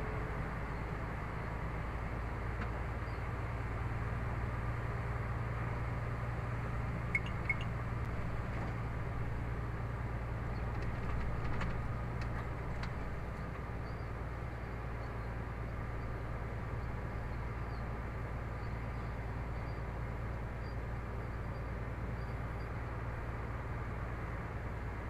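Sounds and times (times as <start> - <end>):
engine drone and road noise: 0.0 - 25.0.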